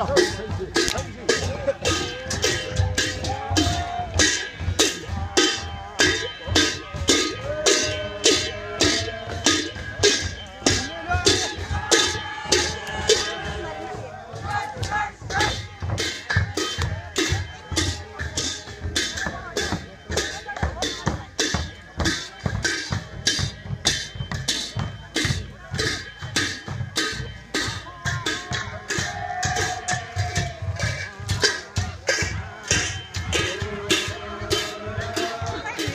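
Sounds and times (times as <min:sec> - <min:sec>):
cymbals beating: 0:00.0 - 0:35.9
drum beating: 0:00.0 - 0:35.9
voices singing: 0:00.0 - 0:35.9.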